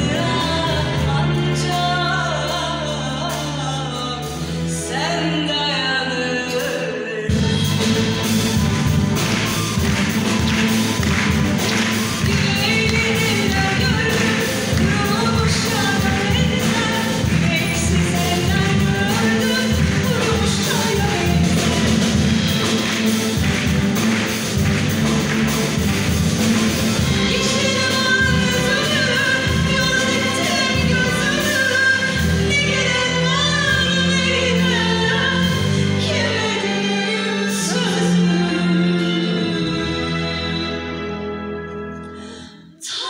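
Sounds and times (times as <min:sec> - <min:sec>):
woman singing classical style: 0:00.0 - 0:07.9, 0:12.2 - 0:22.0, 0:27.0 - 0:40.9, 0:42.7 - 0:43.0
string orchestra: 0:00.0 - 0:43.0
violins and cellos bowing: 0:07.3 - 0:43.0.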